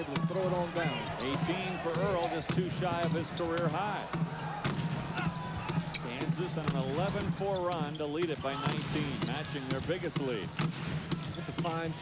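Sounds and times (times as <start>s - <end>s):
basketball dribbling on hardwood: 0.1s - 12.0s.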